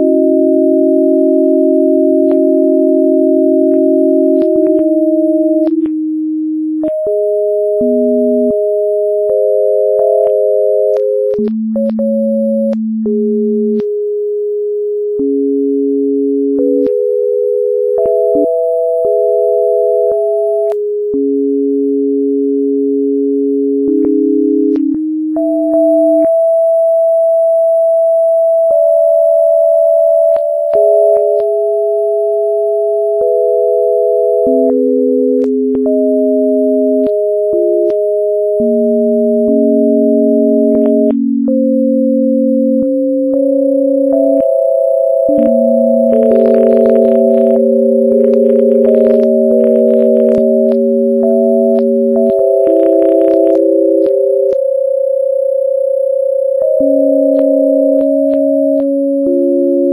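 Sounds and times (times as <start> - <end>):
pure sine tones: 0.0 - 59.9.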